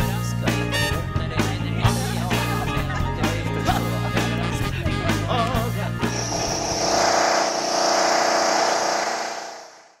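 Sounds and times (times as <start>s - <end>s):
low hum: 6.1s - 10.0s
steady mechanical rush: 6.1s - 10.0s.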